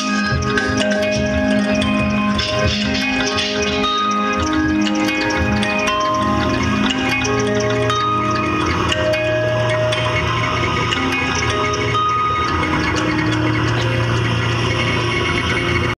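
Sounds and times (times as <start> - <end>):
electronic band music: 0.0 - 16.0.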